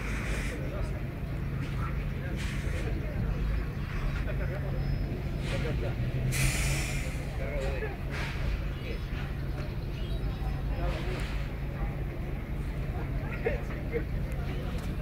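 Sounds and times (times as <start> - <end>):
distant people talking: 0.0 - 15.0.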